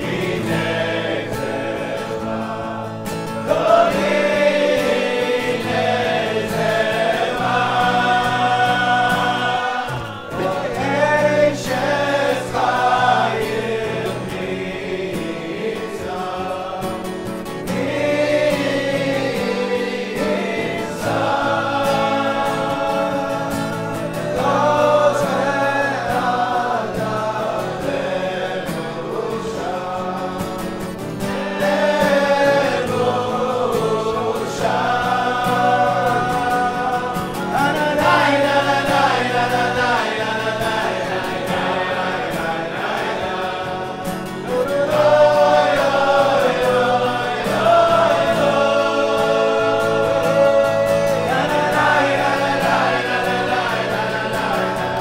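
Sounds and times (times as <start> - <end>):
acoustic guitar strumming: 0.0 - 55.0
men singing in unison: 0.0 - 55.0.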